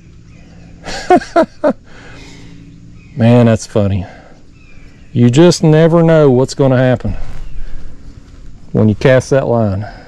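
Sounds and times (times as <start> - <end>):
man laughing: 0.8 - 2.0.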